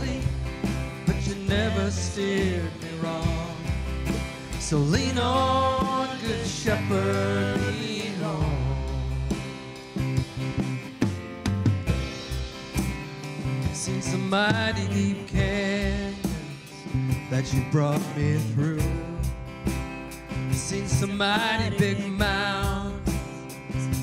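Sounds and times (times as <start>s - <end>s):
person singing: 0.0s - 9.4s, 13.6s - 19.4s, 20.5s - 24.0s
acoustic guitar: 0.0s - 24.0s
drum kit: 0.0s - 24.0s
electric bass: 0.0s - 24.0s.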